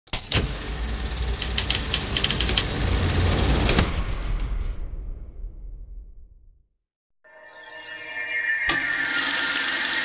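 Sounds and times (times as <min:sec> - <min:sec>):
mechanical rumble and rattle: 0:00.1 - 0:05.4.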